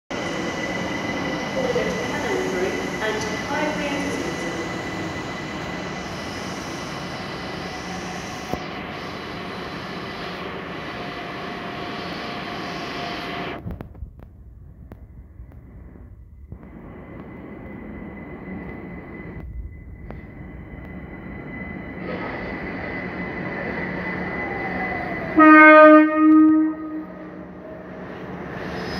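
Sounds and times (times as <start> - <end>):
electric train rumble and hiss: 0.1 - 28.9
thin whine: 13.6 - 27.3
train horn: 25.3 - 27.3.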